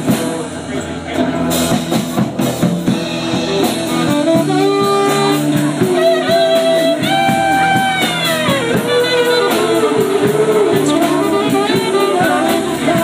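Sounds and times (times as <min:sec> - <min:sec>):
drum kit beat on cymbals: 0:00.0 - 0:13.0
saxophone bending long notes: 0:02.9 - 0:13.0.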